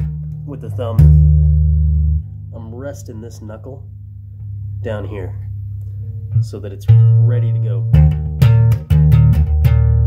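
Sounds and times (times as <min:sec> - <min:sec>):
bass guitar thumping notes: 0:00.0 - 0:10.0.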